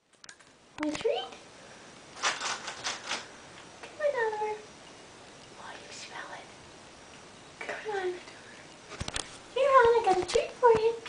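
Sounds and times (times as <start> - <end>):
dry rustling scraping noises: 2.2 - 3.3.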